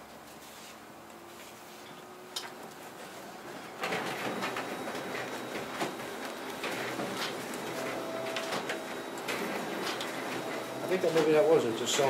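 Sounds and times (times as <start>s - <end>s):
paper rustling: 3.8s - 11.5s.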